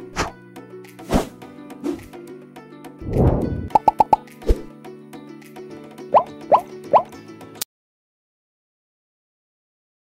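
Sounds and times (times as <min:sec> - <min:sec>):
quick blips: 0:03.6 - 0:04.2.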